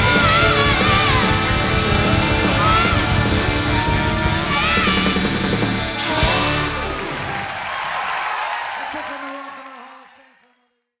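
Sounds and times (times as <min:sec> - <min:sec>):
audience applauding and cheering: 0:00.0 - 0:10.6.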